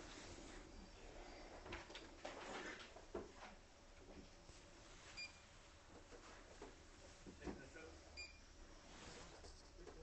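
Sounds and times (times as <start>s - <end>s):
faint electronic beep: 8.2s - 8.5s.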